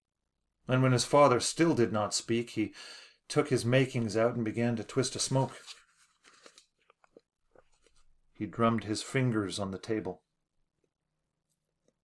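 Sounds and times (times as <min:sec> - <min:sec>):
person reading aloud: 0:00.6 - 0:05.9, 0:08.3 - 0:10.3.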